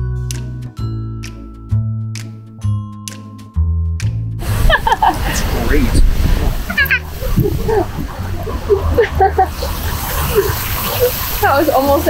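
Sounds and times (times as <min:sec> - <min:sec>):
steady low rumble: 0:04.4 - 0:11.8.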